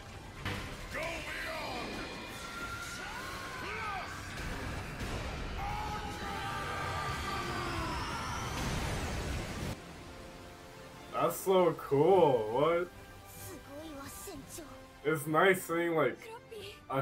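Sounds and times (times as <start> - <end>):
dramatic music: 0.0 - 17.0.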